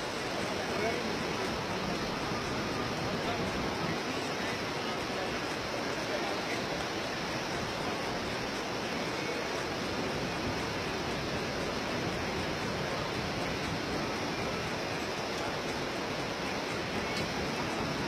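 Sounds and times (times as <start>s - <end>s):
whitewater river rushing: 0.0s - 18.0s.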